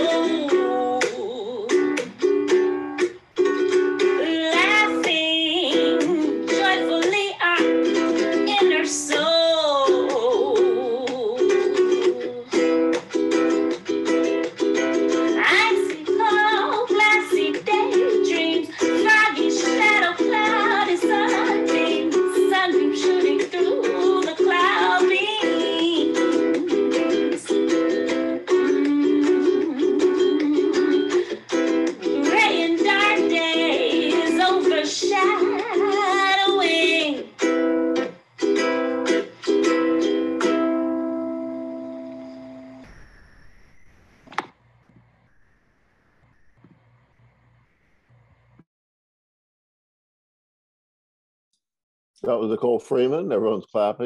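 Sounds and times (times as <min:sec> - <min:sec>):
woman singing: 0:00.0 - 0:02.1, 0:04.1 - 0:12.8, 0:15.3 - 0:27.6, 0:28.5 - 0:31.4, 0:32.0 - 0:37.3
instrumental accompaniment: 0:00.0 - 0:34.2.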